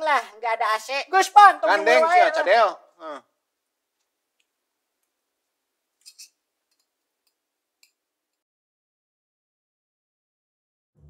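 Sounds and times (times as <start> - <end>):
faint sharp clicks: 4.0 - 5.2, 6.0 - 8.4.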